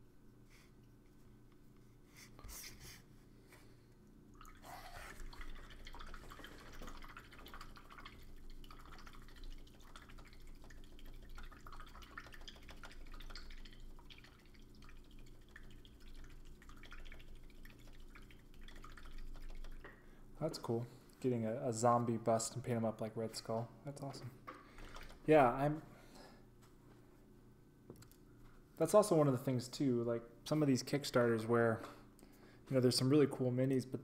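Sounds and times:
paintbrush rinsed in water pot: 0:04.4 - 0:19.9.

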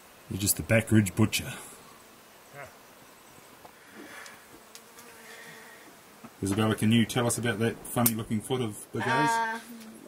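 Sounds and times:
flying insect buzzing: 0:02.0 - 0:06.4.

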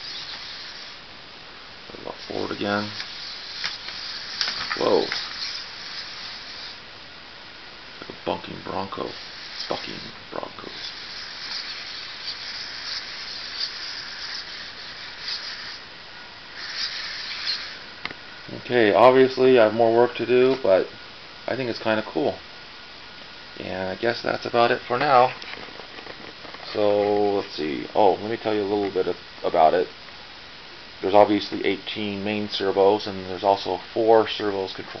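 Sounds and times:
robot servos whirring: 0:02.2 - 0:06.8, 0:09.0 - 0:15.8, 0:16.6 - 0:17.8.

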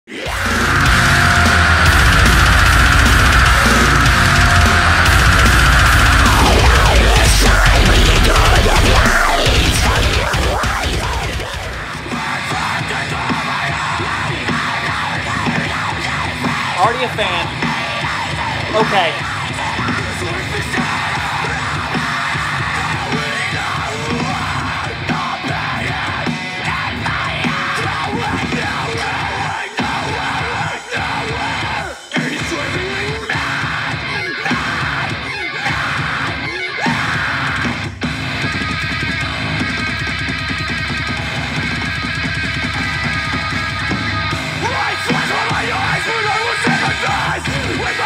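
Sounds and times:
heavy rock band playing: 0:00.1 - 0:48.0.

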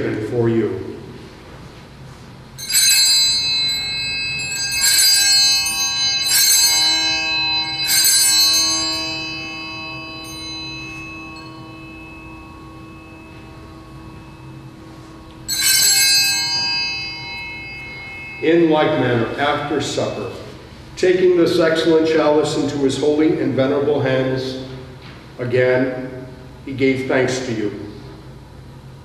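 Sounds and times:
altar bells ringing: 0:02.6 - 0:23.1.

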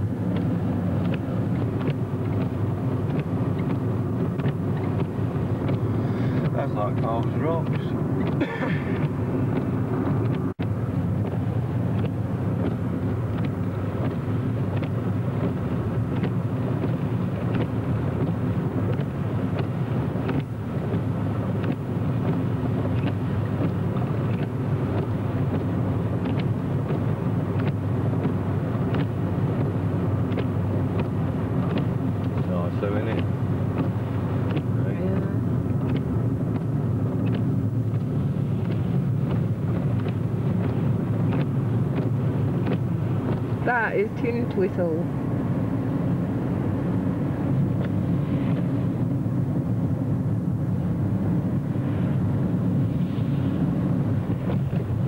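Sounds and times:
car cabin engine noise: 0:00.0 - 0:55.0
tyres on wet road: 0:00.0 - 0:55.0.

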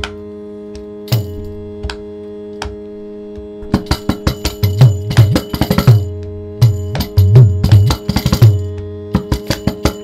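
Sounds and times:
hand drum strokes: 0:03.4 - 0:10.0.

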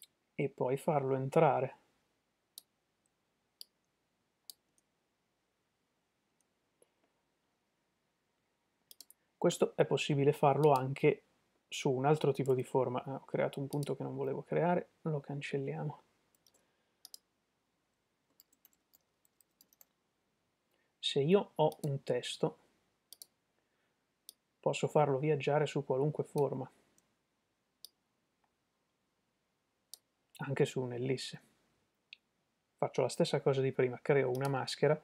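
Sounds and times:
computer mouse clicks: 0:08.9 - 0:09.2, 0:16.3 - 0:17.3, 0:18.3 - 0:20.0, 0:23.1 - 0:23.3.

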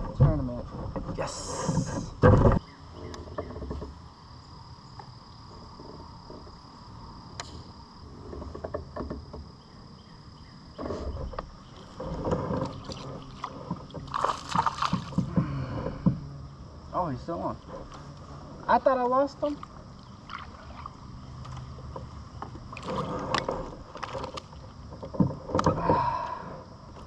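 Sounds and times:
water splashing: 0:11.8 - 0:15.4, 0:18.8 - 0:24.8.

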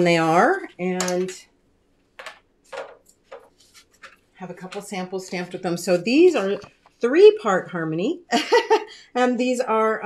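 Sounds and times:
soft rustling scrapes: 0:03.1 - 0:07.1.

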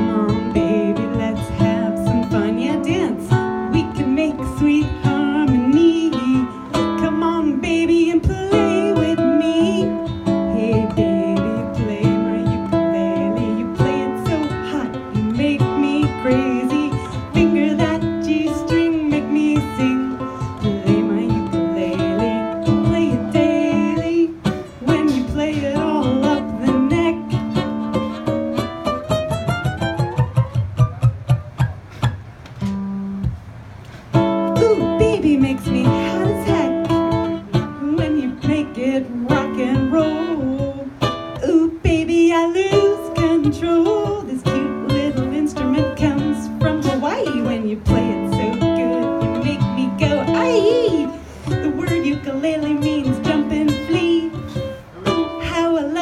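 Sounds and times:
woman singing into microphone: 0:00.0 - 0:28.7, 0:34.1 - 0:56.0
ukulele strumming: 0:00.0 - 0:56.0.

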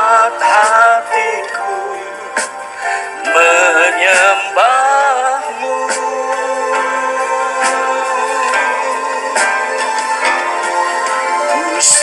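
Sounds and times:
man singing into a microphone: 0:00.0 - 0:02.5, 0:03.2 - 0:09.2, 0:11.4 - 0:12.0
background music: 0:00.0 - 0:12.0.

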